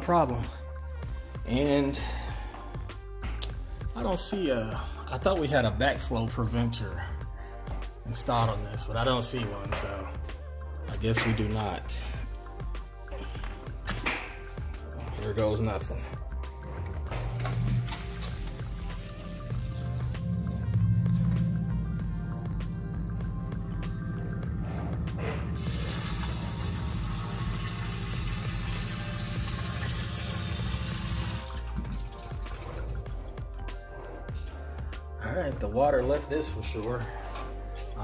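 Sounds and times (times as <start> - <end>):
sump pump humming: 12.0 - 35.0
water rushing hiss: 25.6 - 31.7.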